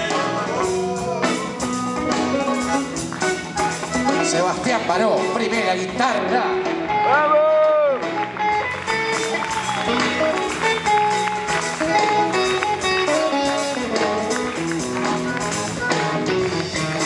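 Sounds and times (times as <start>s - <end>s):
bass guitar: 0.0s - 17.0s
drums: 0.0s - 17.0s
electric guitar solo: 6.6s - 17.0s.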